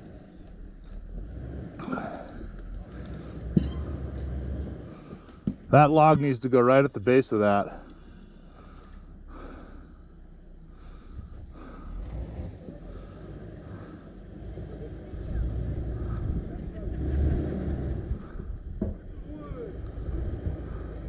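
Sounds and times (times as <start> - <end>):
engine labouring over rocks: 0.0 - 21.0.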